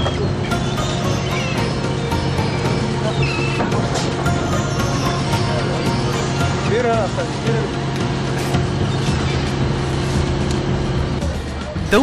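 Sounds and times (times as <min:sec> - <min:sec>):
boat engine drone: 0:00.0 - 0:12.0.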